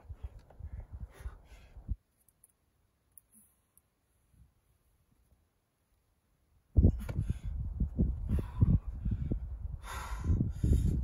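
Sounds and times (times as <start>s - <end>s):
hard effortful breathing: 6.9s - 11.0s.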